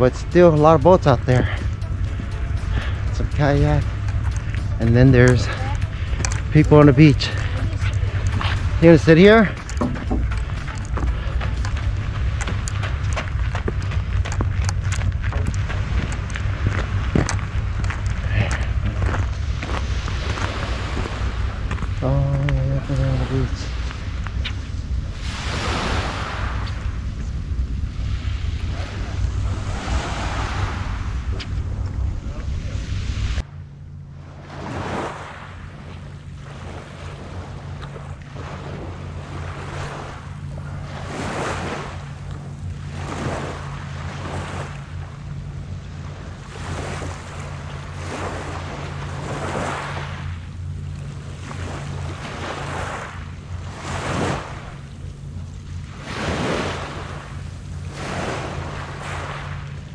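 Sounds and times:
small waves lapping on shore: 0:00.0 - 0:59.9
wind buffeting microphone: 0:00.0 - 0:59.9.

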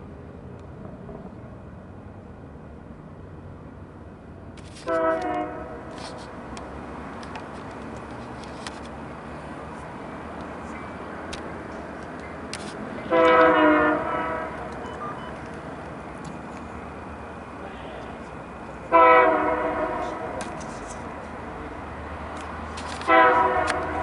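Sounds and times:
train rumbling: 0:00.0 - 0:24.0
train horn blasts: 0:04.8 - 0:05.9, 0:13.0 - 0:14.8, 0:18.9 - 0:20.4, 0:23.0 - 0:24.0.

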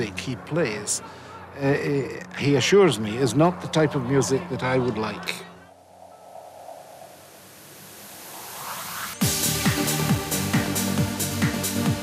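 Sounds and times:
electronic noise sweep: 0:05.7 - 0:09.6.

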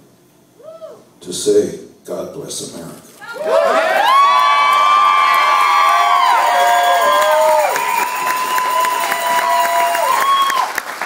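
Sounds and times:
audience cheering: 0:03.3 - 0:11.0.

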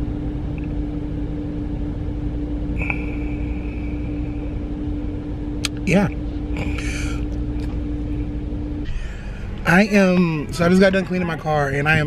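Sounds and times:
car cabin rumble: 0:00.0 - 0:12.0
constant humming tone: 0:00.0 - 0:12.0.

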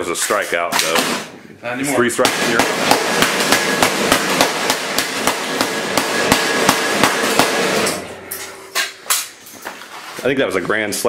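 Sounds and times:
hammer beating on laptop: 0:02.2 - 0:08.0.

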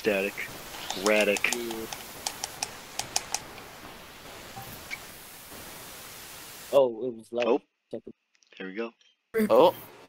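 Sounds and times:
microphone static hiss: 0:00.0 - 0:07.0
crackling clicks: 0:00.4 - 0:05.0.

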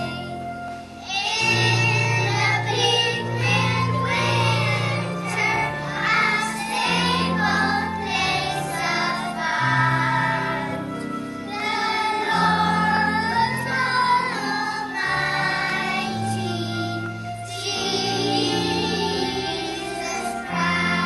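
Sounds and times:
children singing together: 0:00.0 - 0:21.0.

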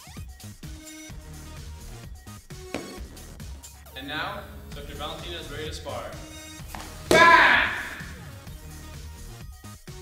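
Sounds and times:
background music: 0:00.0 - 0:10.0
kick thud on chest guard: 0:06.7 - 0:07.9
loud shout: 0:07.1 - 0:08.2.

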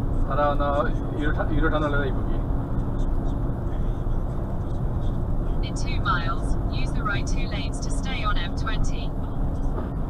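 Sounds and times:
lorry engine rumble: 0:00.0 - 0:10.0.

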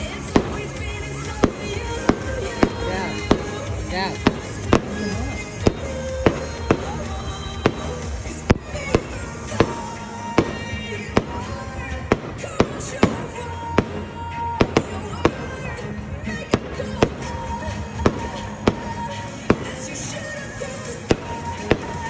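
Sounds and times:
fireworks bursting with bangs: 0:00.0 - 0:22.0
music playing: 0:00.0 - 0:22.0.

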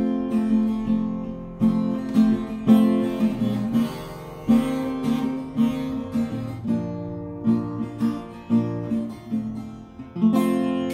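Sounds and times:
acoustic guitar plucked: 0:00.0 - 0:10.9.

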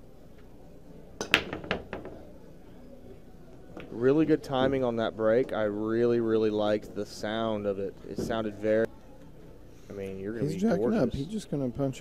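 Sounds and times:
cue ball cracking into rack: 0:01.2 - 0:02.2
pool balls clicking: 0:01.2 - 0:02.3.

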